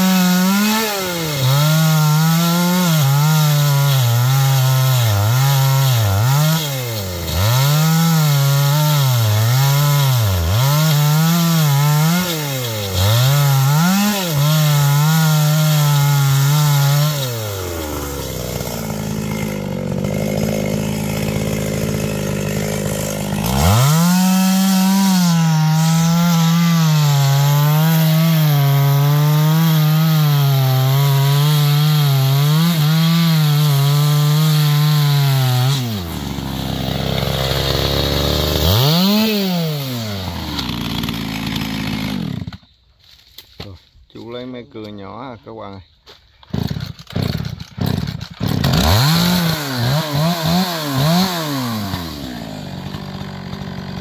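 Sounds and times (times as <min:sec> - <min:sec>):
chainsaw cutting tree trunk: 0:00.0 - 0:42.7, 0:46.4 - 0:54.0.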